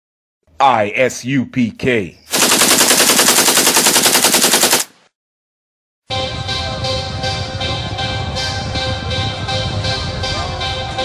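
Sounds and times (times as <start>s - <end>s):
machine-gun fire: 2.3s - 5.0s.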